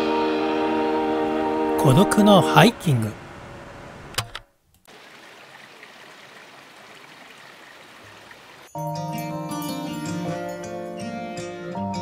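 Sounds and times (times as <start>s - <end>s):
stream water rushing: 4.9s - 8.7s.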